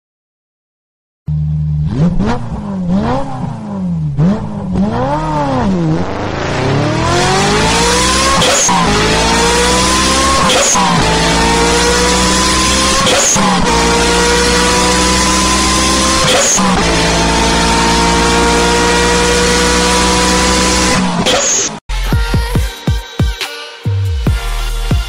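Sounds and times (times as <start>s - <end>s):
car engine revving and accelerating: 1.3s - 21.8s.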